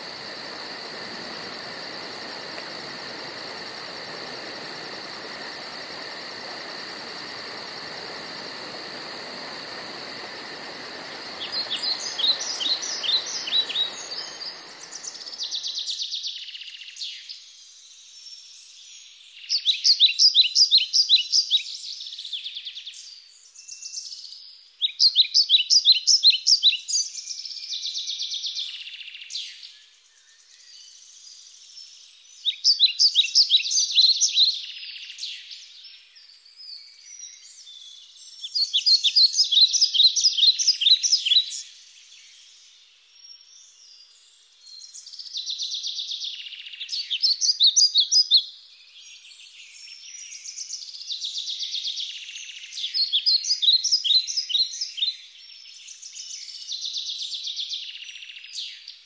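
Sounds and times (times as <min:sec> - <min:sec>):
steady hiss with high tones: 0:00.0 - 0:16.0
songbird chirping: 0:00.0 - 0:59.0.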